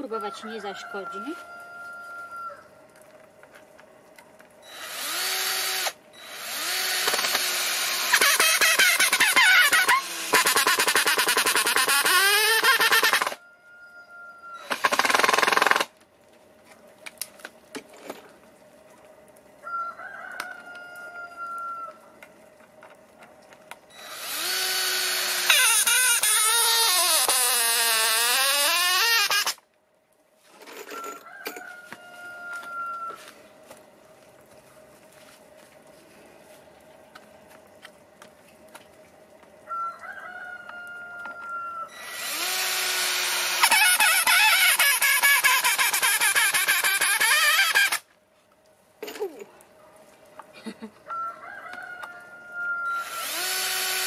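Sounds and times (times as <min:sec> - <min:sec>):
cordless drill driving screws: 0:04.7 - 0:13.4, 0:14.6 - 0:15.9, 0:24.0 - 0:29.6, 0:42.0 - 0:48.0, 0:53.0 - 0:54.0.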